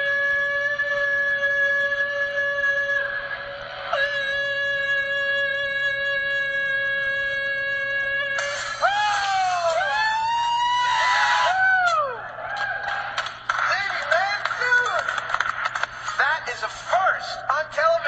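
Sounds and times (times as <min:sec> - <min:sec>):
man singing loud note: 0:00.0 - 0:10.6
excited shouts and whoops: 0:08.8 - 0:13.1.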